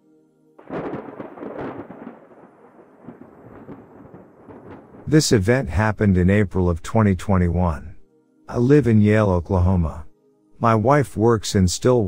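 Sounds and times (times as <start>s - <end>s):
thunderclap rumbling: 0.6s - 5.9s.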